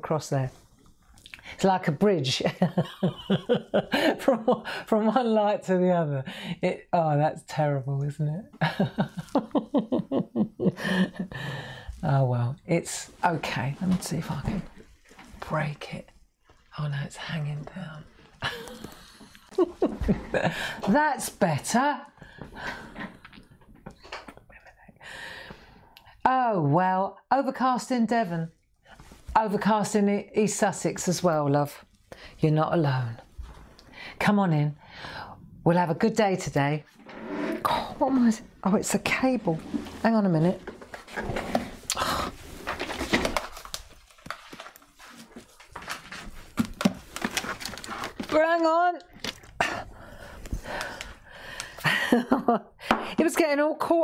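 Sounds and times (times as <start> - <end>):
woman breathing: 6.3 - 6.6, 10.8 - 12.0, 20.4 - 20.9, 24.8 - 26.2, 34.8 - 35.5, 49.6 - 52.1
cable being handled and pulled: 39.4 - 49.6.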